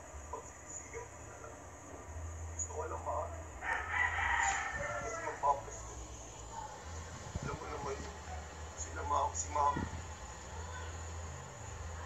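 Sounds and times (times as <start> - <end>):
faint speech: 4.8 - 12.0.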